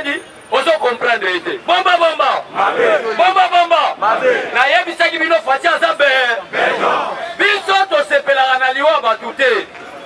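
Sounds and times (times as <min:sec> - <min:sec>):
man shouting through loudspeaker: 0:00.0 - 0:09.7
crowd shouting: 0:02.4 - 0:05.0, 0:06.0 - 0:07.9.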